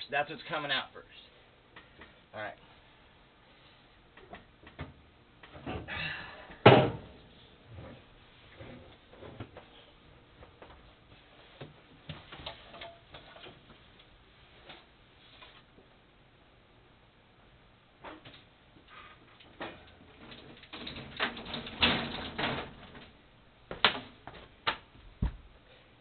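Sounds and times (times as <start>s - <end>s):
loud clunk of roller popping out: 6.6s - 7.1s
knocks and rattles of roller: 19.5s - 23.2s.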